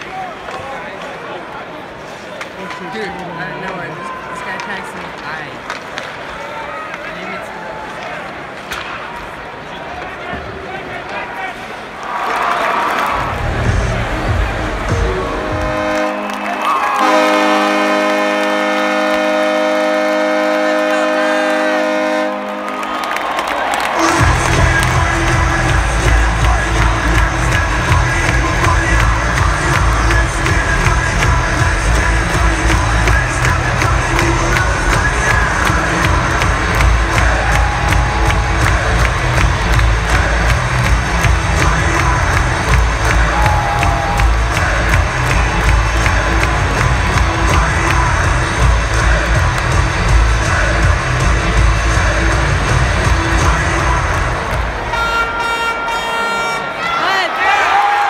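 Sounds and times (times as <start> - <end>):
crowd cheering and shouting: 0.0 - 58.0
arena music with steady beat: 24.0 - 54.9.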